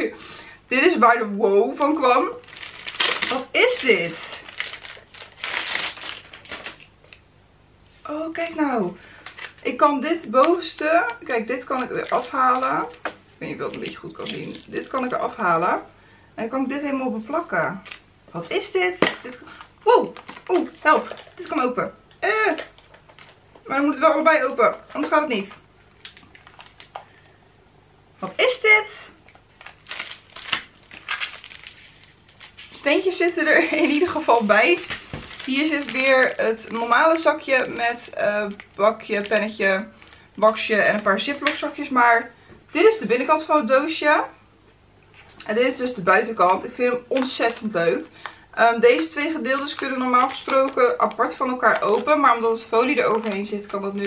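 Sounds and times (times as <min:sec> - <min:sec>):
plastic wrapping crinkling: 0:01.8 - 0:07.3, 0:08.2 - 0:15.6, 0:17.7 - 0:27.4, 0:29.0 - 0:41.8, 0:45.0 - 0:54.0.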